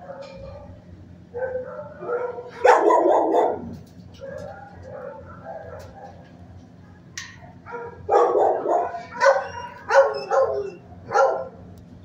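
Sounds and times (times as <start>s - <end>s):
dog barking: 0.0s - 6.3s, 7.3s - 11.6s.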